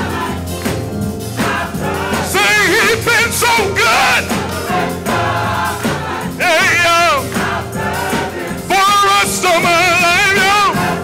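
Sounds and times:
gospel choir singing: 0:00.0 - 0:11.0
instrumental accompaniment: 0:00.0 - 0:11.0.

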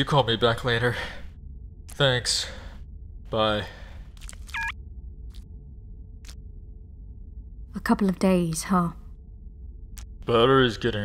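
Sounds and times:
faint low hum: 0:00.0 - 0:11.0
short electronic beep: 0:04.5 - 0:04.8.

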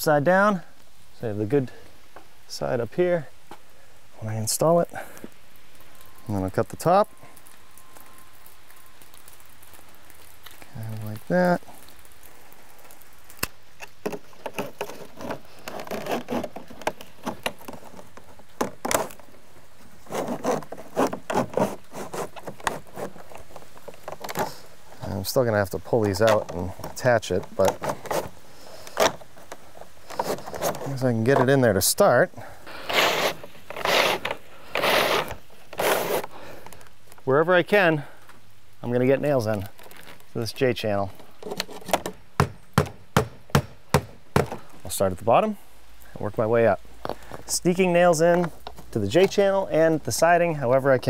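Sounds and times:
vinyl trim scraping siding: 0:12.8 - 0:36.9, 0:39.1 - 0:45.3.

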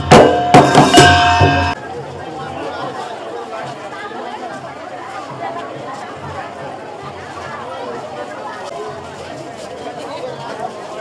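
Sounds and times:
brass cymbals striking: 0:00.0 - 0:01.8
crowd chattering: 0:00.0 - 0:11.0.

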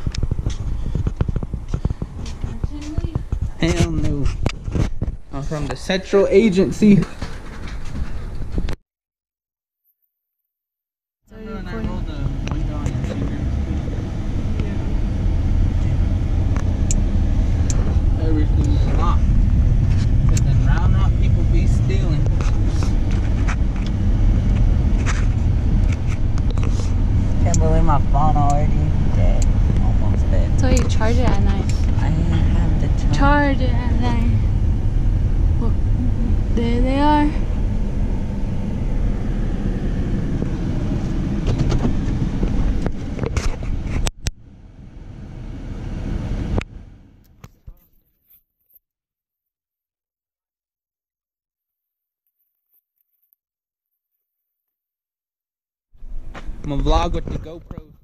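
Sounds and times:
car engine and road noise: 0:00.0 - 0:08.8, 0:11.3 - 0:47.6, 0:56.0 - 0:58.0.

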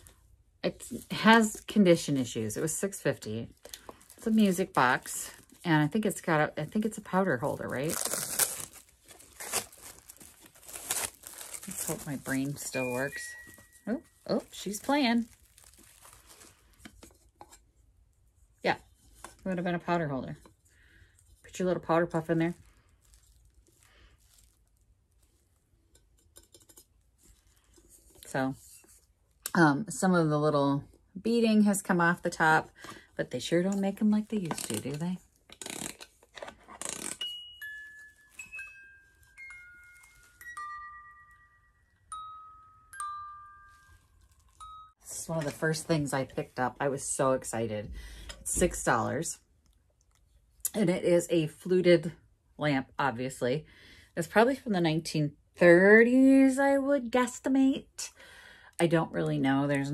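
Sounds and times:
handling rustle: 0:03.5 - 0:17.8, 0:22.6 - 0:29.1, 0:34.3 - 0:40.7
music box playing slow tune: 0:37.2 - 0:45.0.

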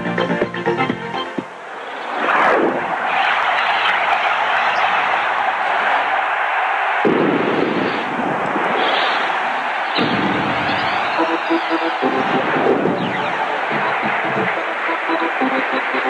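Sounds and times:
steady rushing noise: 0:01.4 - 0:16.0.

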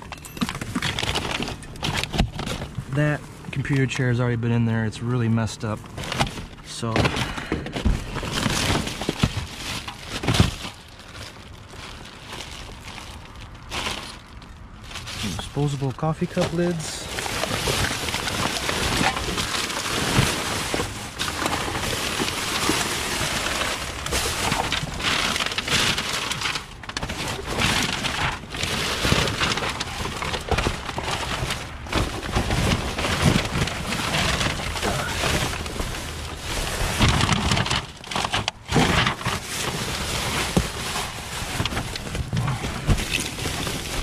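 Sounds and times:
plastic bags crinkling: 0:00.0 - 0:44.0
cardboard being shifted: 0:14.9 - 0:44.0.

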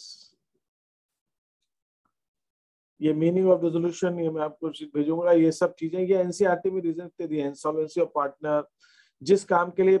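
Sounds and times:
man speaking: 0:03.0 - 0:10.0.

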